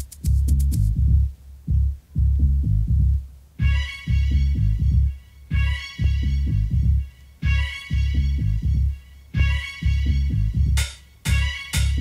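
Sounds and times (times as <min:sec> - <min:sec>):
bassline: 0:00.0 - 0:12.0
low kick drum: 0:00.0 - 0:12.0.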